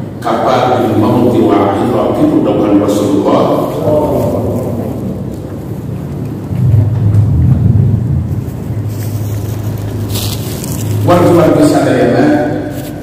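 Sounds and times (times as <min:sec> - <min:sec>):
steady low hum: 0:00.0 - 0:13.0
low rumble: 0:01.5 - 0:11.7.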